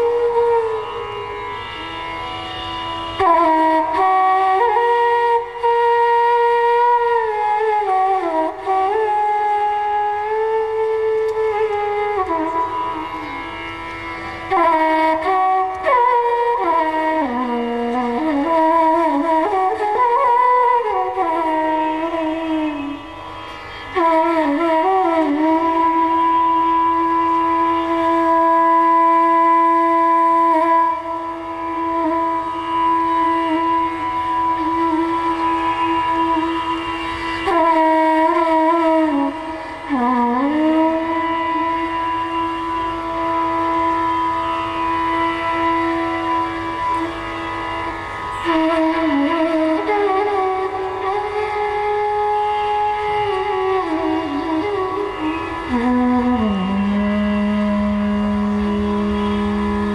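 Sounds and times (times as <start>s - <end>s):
bamboo flute sustained notes: 0.0s - 59.9s
tanpura drone: 0.0s - 59.9s.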